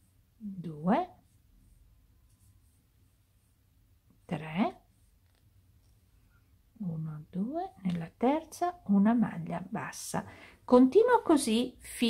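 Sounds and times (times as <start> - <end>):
crochet hook rustling yarn: 0.0 - 6.7
low room hum: 0.0 - 12.0
person speaking: 4.2 - 4.9.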